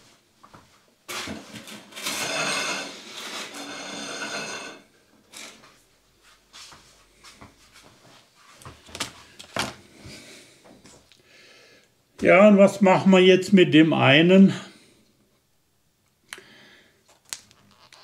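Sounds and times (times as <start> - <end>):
scraping and rubbing on a tabletop: 1.1 - 4.8.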